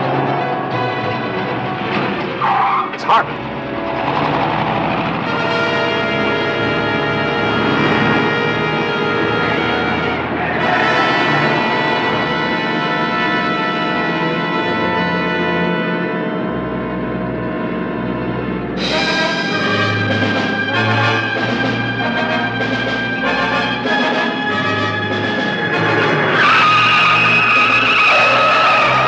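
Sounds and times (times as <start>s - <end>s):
dramatic orchestral music: 0.0s - 17.4s, 18.0s - 29.0s.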